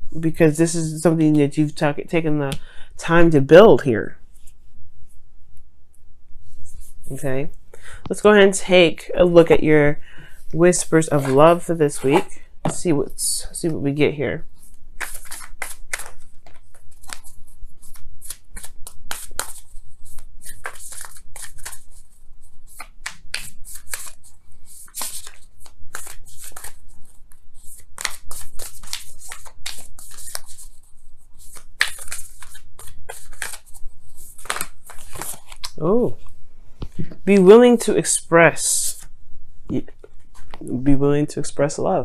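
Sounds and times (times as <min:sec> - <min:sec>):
cards shuffling: 0:10.5 - 0:13.8, 0:15.0 - 0:37.6.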